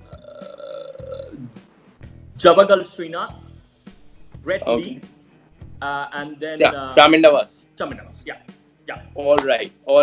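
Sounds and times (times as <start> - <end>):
quiet background music: 0.0 - 10.0
man's drawn-out hesitation sound: 4.5 - 5.0.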